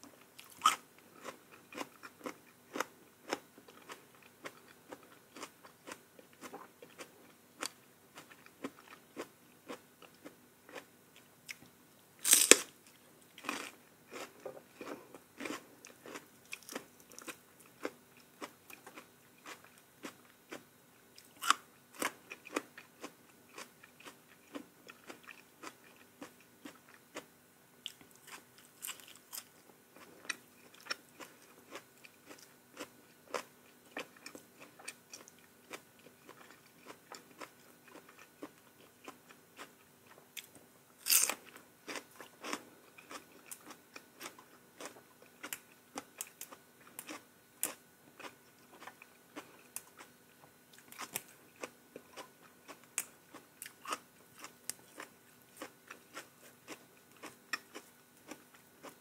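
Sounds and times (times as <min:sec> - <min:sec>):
chewing and crunching greens: 0:00.1 - 0:59.0.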